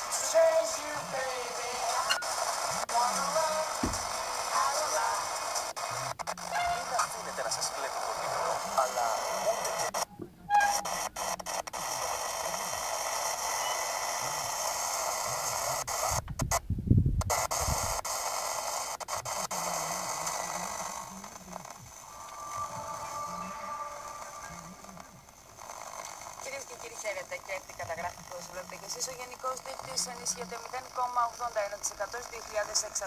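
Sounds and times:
faint broadcast audio: 0:00.0 - 0:16.6, 0:17.3 - 0:33.0
tv static hiss and crackle: 0:00.0 - 0:16.6, 0:17.2 - 0:33.0
low thump: 0:03.8 - 0:04.1.

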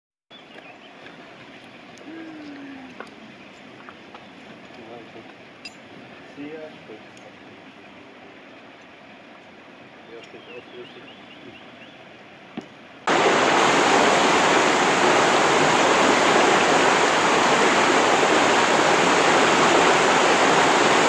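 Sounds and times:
rushing background noise: 0:11.6 - 0:21.0.

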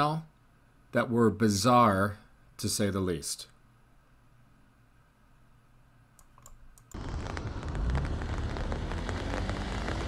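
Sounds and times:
deep rumble: 0:06.9 - 0:10.0
heavy rain on umbrella: 0:07.0 - 0:10.0.

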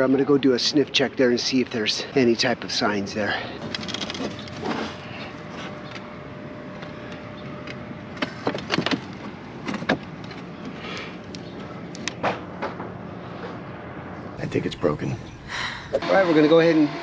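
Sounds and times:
outdoor background hum: 0:00.0 - 0:17.0.

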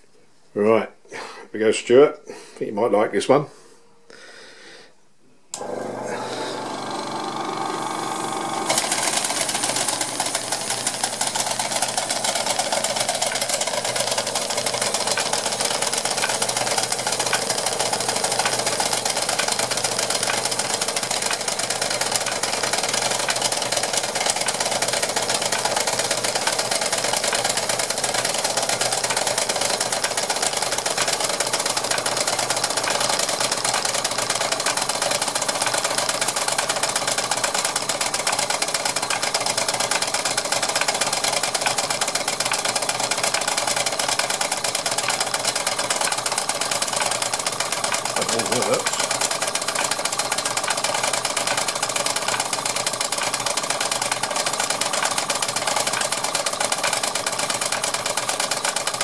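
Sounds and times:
toy mill and hammer rattling: 0:07.8 - 0:59.0.

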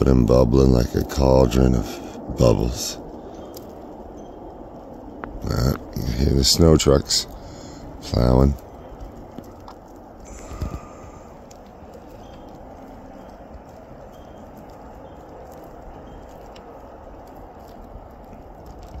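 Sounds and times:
snowplow trucks plowing: 0:00.0 - 0:19.0
faint clicks: 0:07.3 - 0:19.0.

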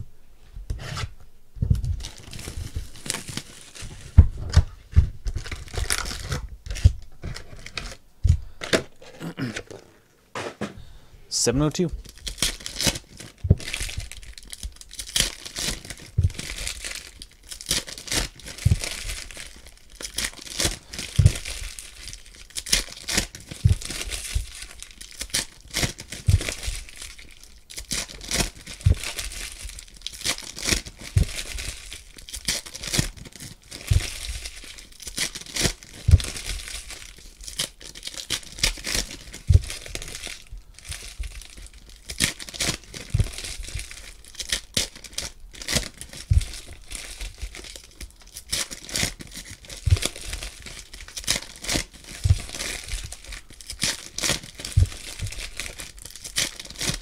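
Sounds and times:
soft low thump: 0:01.6 - 0:02.1, 0:04.1 - 0:05.4
foil wrappers crinkling and tearing: 0:01.9 - 0:09.8, 0:11.7 - 0:57.0.

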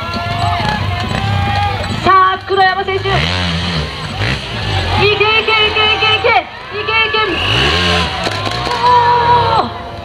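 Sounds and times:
motorcycle engine revving: 0:00.0 - 0:09.8.

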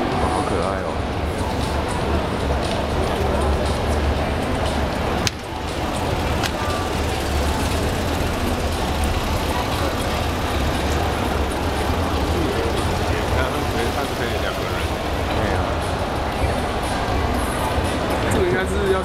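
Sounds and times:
crowd chatter: 0:00.0 - 0:19.0
small car engine running: 0:00.0 - 0:19.0.

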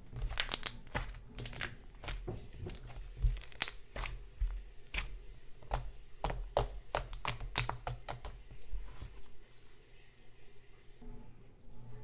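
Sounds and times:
slime popping and crackling: 0:00.1 - 0:08.4.

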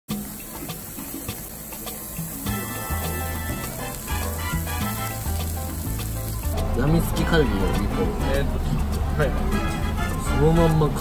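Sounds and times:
meat sizzling on a grill: 0:00.1 - 0:09.4
background music with bass: 0:00.1 - 0:11.0.

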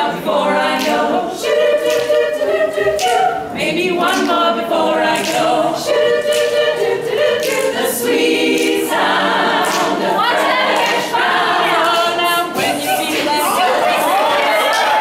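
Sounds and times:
women's choir singing a cappella: 0:00.0 - 0:15.0.

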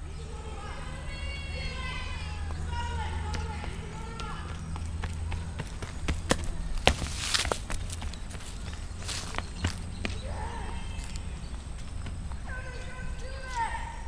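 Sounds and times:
steady low rumble: 0:00.0 - 0:13.3
footfalls on asphalt: 0:02.4 - 0:13.9.

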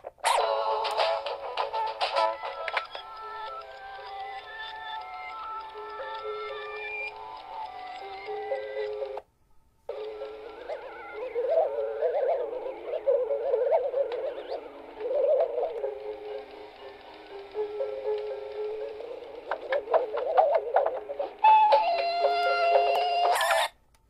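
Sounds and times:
held stack of steady tones: 0:00.4 - 0:24.0
warbling electronic tones: 0:09.9 - 0:23.7.

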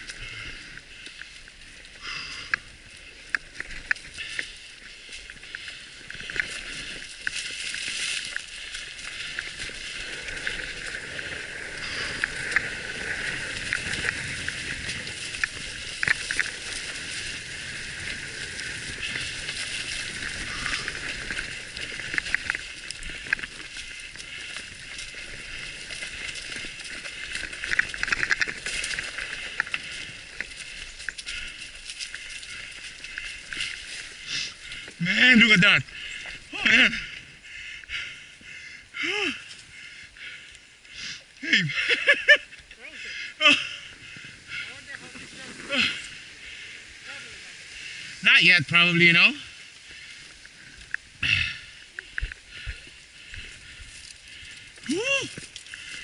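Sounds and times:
bike clicks and rattles: 0:00.0 - 0:35.0, 0:49.8 - 0:56.0
bike tyres hissing on dirt: 0:00.0 - 0:56.0.

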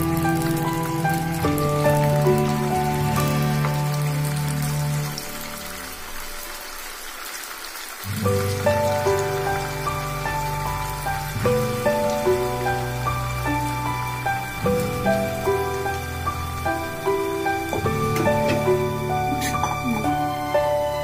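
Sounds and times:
background music: 0:00.0 - 0:07.4, 0:08.0 - 0:21.0
hot oil sizzling: 0:00.0 - 0:21.0.

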